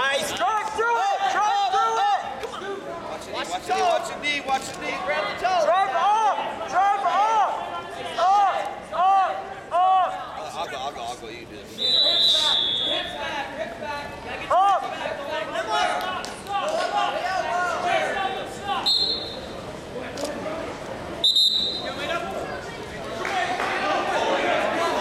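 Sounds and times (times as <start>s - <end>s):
loud shout: 0.0s - 2.8s
people calling out: 14.4s - 19.6s.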